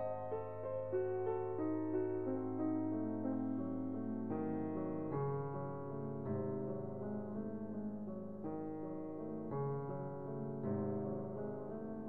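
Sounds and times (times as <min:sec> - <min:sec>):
soft piano melody: 0:00.0 - 0:12.0.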